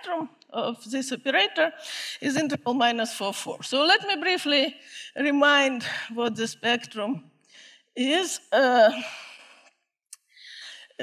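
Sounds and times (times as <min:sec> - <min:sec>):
woman speaking: 0:00.0 - 0:07.2, 0:08.0 - 0:09.3.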